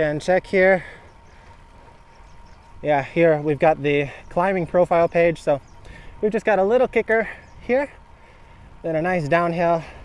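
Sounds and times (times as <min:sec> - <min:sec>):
man talking: 0:00.0 - 0:01.0, 0:02.8 - 0:05.6, 0:06.2 - 0:08.0, 0:08.8 - 0:10.0
bike riding on pavement: 0:00.0 - 0:10.0.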